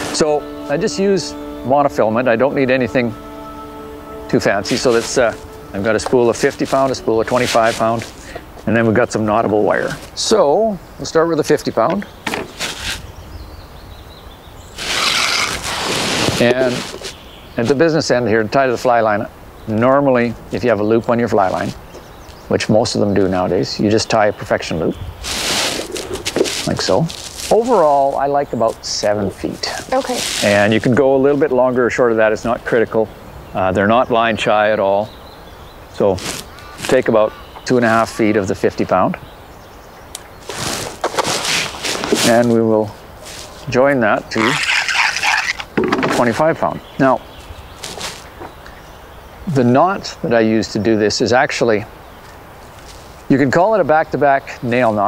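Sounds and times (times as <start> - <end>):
fishing line drawn off spool: 14.8 - 17.0, 44.4 - 45.7
faint bird calling: 35.0 - 40.6
fishing line stripped off spool: 44.4 - 45.8.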